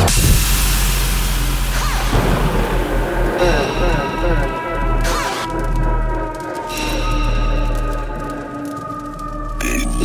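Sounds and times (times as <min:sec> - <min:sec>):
held sub-bass: 0:00.0 - 0:05.1
dubstep track: 0:00.0 - 0:05.9.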